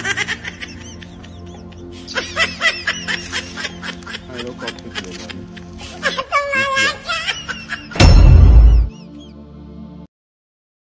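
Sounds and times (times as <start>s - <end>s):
high-pitched snickering laughter: 0.0s - 5.3s
background music: 0.0s - 10.1s.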